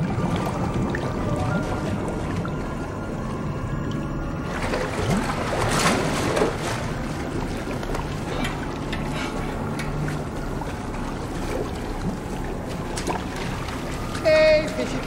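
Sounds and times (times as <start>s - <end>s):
rushing churning water: 0.0s - 15.0s.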